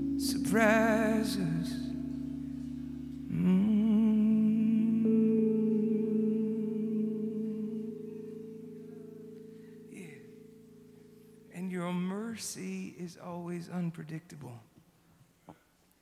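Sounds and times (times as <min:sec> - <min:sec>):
man singing long note: 0:00.0 - 0:09.2, 0:09.8 - 0:10.5
sustained keyboard chord: 0:00.0 - 0:12.6.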